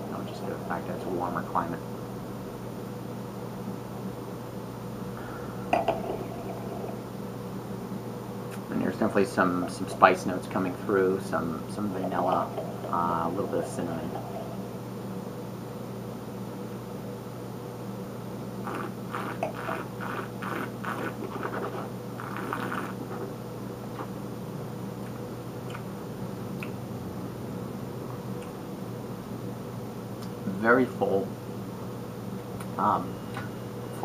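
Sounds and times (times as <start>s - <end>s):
room hum: 0.0s - 34.0s
person slurping wine: 18.6s - 23.2s.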